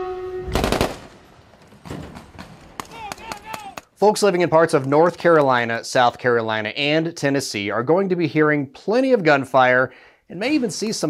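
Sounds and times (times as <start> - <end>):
person shouting: 2.9 - 3.9.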